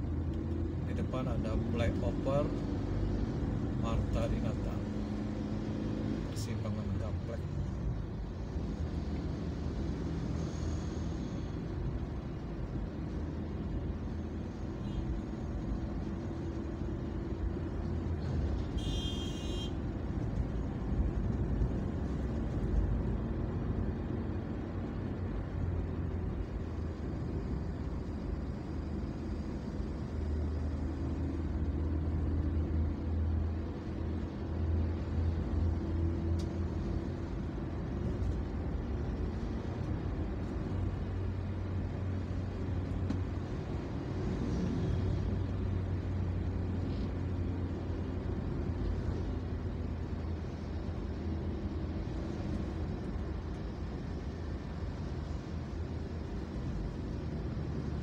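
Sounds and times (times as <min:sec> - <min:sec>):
vehicle road rumble: 0:00.0 - 0:58.0.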